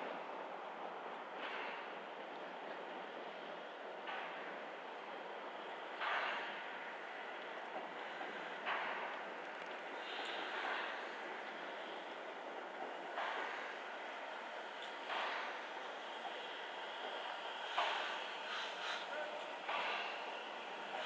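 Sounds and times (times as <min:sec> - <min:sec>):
steam engine chuffing: 0:15.0 - 0:21.0.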